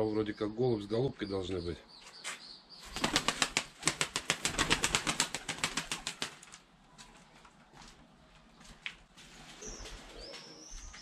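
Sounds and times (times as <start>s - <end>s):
pigeon wing claps: 3.0s - 6.6s.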